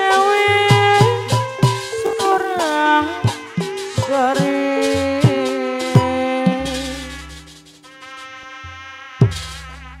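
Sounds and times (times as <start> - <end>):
nasal buzzy reed horn note: 0.0 - 10.0.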